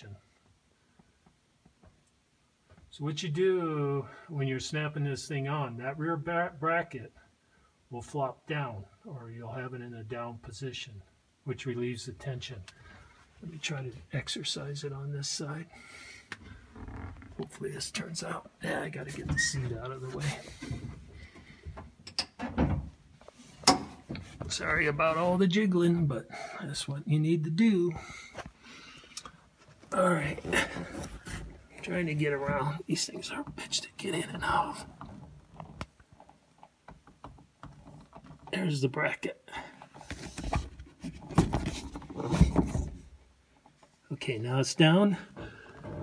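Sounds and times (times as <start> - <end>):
handling knocks and rattles: 34.4 - 38.6, 39.8 - 44.0.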